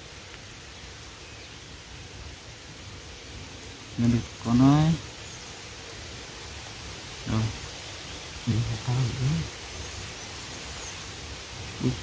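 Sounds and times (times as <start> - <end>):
outdoor background noise: 0.0 - 12.0
man speaking: 4.0 - 5.0, 7.2 - 7.6, 8.5 - 9.5, 11.8 - 12.0.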